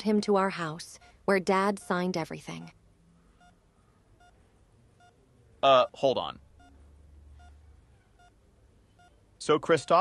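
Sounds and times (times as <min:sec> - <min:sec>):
faint low hum: 0:00.0 - 0:10.0
faint short electronic beeps: 0:02.6 - 0:03.6, 0:04.2 - 0:10.0.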